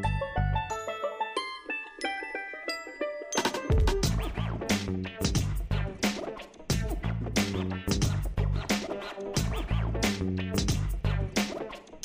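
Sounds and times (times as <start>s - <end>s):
plucked string melody: 0.0s - 10.8s.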